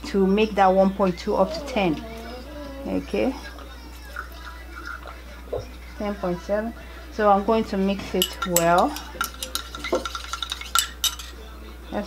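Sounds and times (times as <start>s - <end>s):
stirring rod clinking in beaker: 8.2s - 11.4s.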